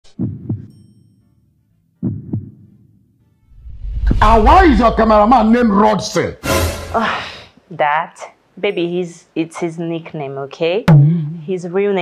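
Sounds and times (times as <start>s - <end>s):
heartbeat thumps: 0.0s - 0.7s, 2.0s - 2.7s, 10.9s - 11.4s.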